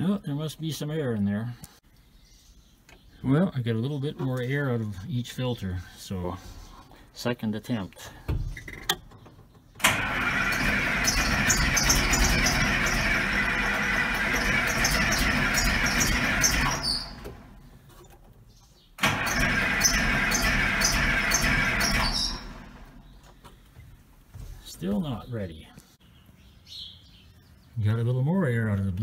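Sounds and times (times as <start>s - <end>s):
tractor diesel engine cranking: 8.1s - 18.2s, 19.0s - 23.3s.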